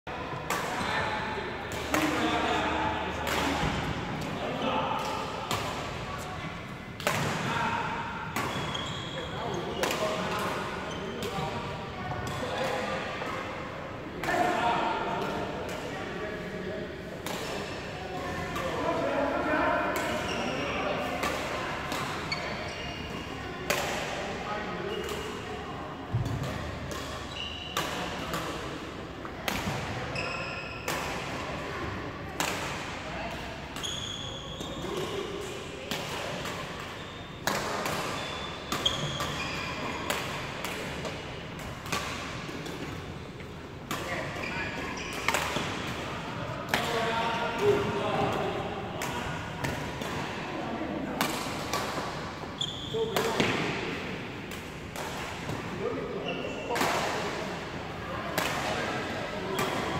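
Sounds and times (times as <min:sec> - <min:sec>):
badminton rackets hitting shuttlecocks: 0:01.7 - 0:02.4, 0:03.2 - 0:04.3, 0:08.2 - 0:08.9, 0:21.1 - 0:22.6, 0:23.6 - 0:24.2, 0:29.4 - 0:29.9, 0:30.8 - 0:31.7, 0:32.4 - 0:46.0, 0:46.7 - 0:50.4, 0:51.1 - 0:52.4, 0:53.1 - 0:55.7, 0:56.7 - 0:57.7, 0:58.3 - 0:59.9.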